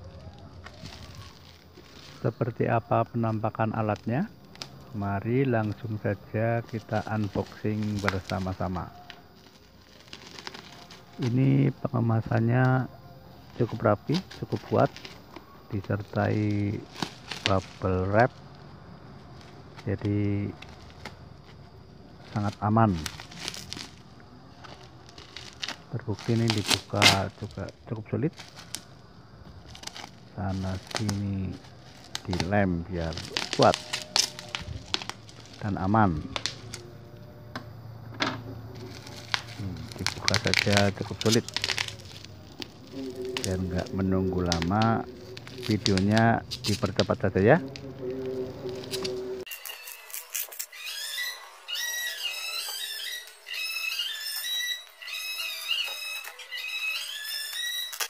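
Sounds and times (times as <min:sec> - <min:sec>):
plastic wrap crinkling: 0:00.0 - 0:02.6, 0:03.5 - 0:37.0, 0:38.2 - 0:58.0
scissors snipping plastic: 0:06.7 - 0:11.3, 0:13.5 - 0:17.9, 0:22.2 - 0:24.0, 0:24.6 - 0:27.6, 0:29.6 - 0:32.5, 0:33.1 - 0:36.8, 0:38.8 - 0:47.9, 0:48.9 - 0:50.8.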